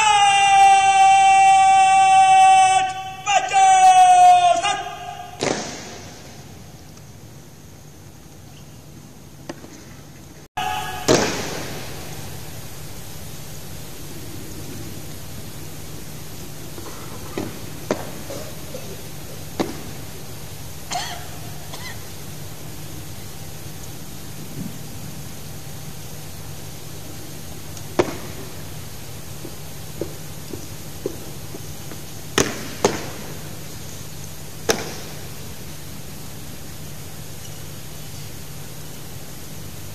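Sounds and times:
low background hum: 0:00.0 - 0:39.9.

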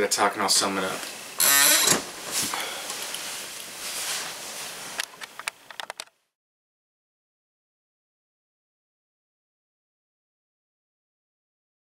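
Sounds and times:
clothing rustling: 0:01.8 - 0:05.0.

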